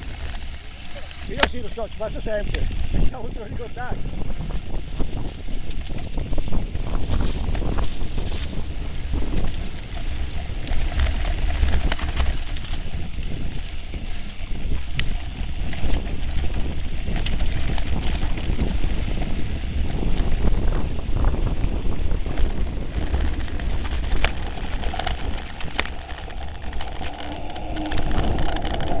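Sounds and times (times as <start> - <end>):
knocks and rattles from rough ground: 0.0 - 29.0
wind noise on microphone: 0.0 - 29.0.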